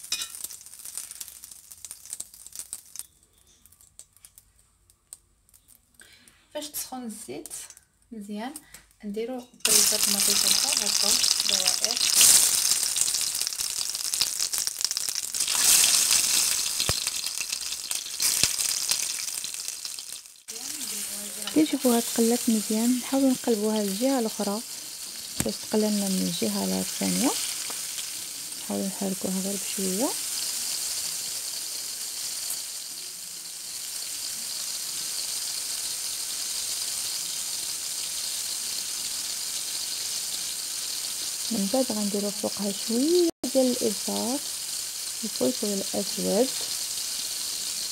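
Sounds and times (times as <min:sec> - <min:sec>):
food sizzling in hot oil: 0:00.0 - 0:04.6, 0:09.6 - 0:47.9.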